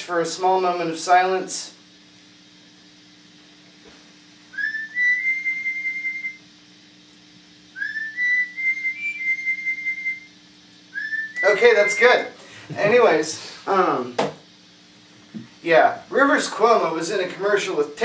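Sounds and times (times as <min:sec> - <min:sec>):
steady low hum: 0:00.0 - 0:18.0
person whistling high notes: 0:04.5 - 0:06.4, 0:07.8 - 0:12.3.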